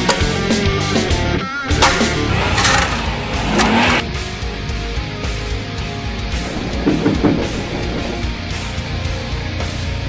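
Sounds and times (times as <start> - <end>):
rock music with electric guitar: 0.0 - 10.0
car engine revving: 1.7 - 4.4.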